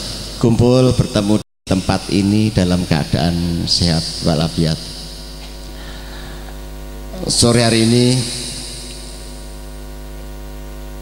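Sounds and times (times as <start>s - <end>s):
man's amplified voice: 0.0s - 5.1s, 7.1s - 9.0s
electrical mains hum: 0.0s - 11.0s.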